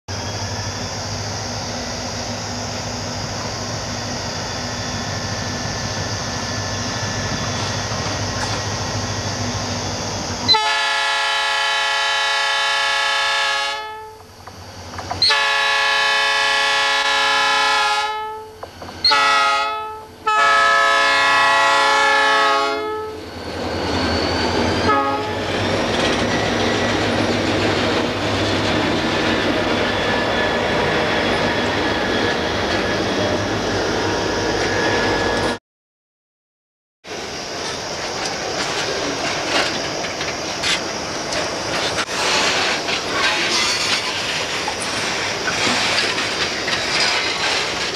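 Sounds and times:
train engine rumble: 0.1 - 35.6, 37.0 - 47.9
train rolling past: 0.1 - 35.6, 37.0 - 47.9
train horn blasts: 10.5 - 14.3, 15.2 - 23.3, 24.8 - 25.5.

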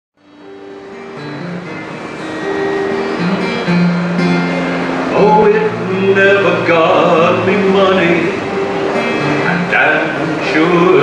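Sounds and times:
acoustic guitar playing: 0.2 - 11.0.

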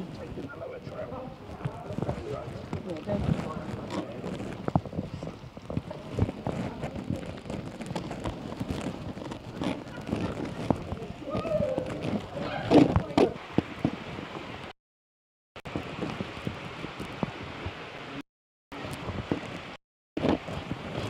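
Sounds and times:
people's voices: 0.0 - 7.6, 9.6 - 13.4
footsteps on rock: 0.2 - 14.0.

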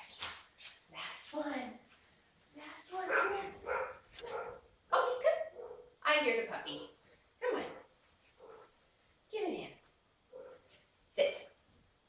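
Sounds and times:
dog barking: 3.1 - 6.0, 7.7 - 8.7, 10.3 - 10.7.

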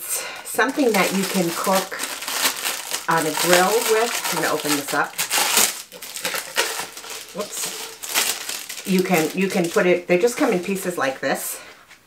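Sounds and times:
packaging crinkling and rustling: 0.5 - 10.6.

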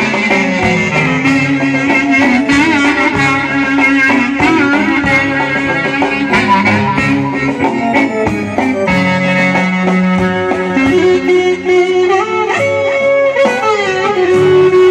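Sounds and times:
sliding melody line: 0.0 - 14.9.

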